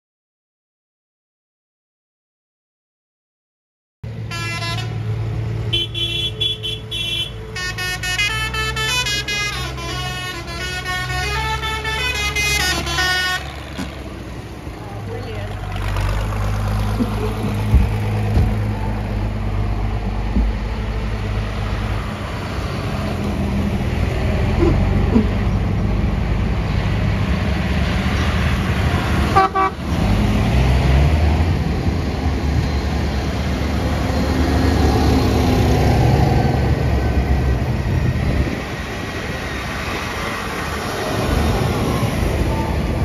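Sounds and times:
tractor diesel engines: 0:04.1 - 0:43.0
vehicle horn playing notes: 0:04.3 - 0:05.1, 0:05.7 - 0:13.9, 0:29.3 - 0:29.8.

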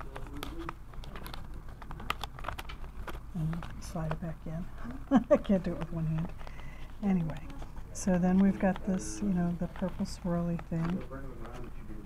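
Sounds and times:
paper clicks and rustles: 0:00.0 - 0:12.0.

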